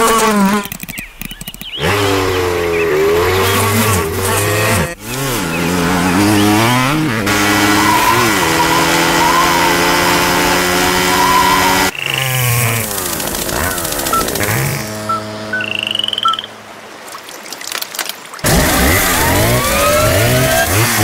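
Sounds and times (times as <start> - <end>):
cartoon bee buzzing: 1.8 - 16.5
short high chirps: 15.0 - 16.6.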